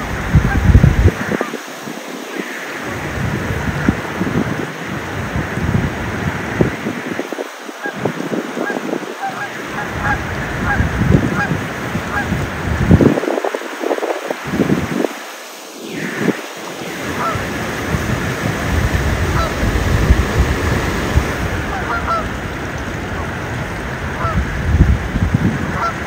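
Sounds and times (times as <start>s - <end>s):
swans splashing across water: 0.0s - 26.0s
geese honking: 7.8s - 12.6s, 15.9s - 24.4s, 25.7s - 26.0s.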